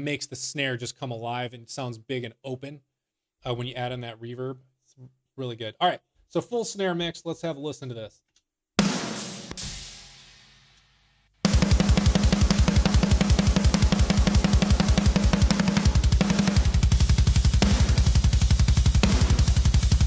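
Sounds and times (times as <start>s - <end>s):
snare hit reverb tail: 8.8s - 10.5s
fast metal drumming: 11.5s - 20.0s.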